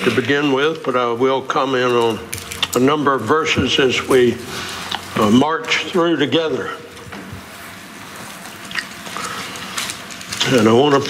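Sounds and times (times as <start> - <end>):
room noise hiss: 0.0 - 11.0.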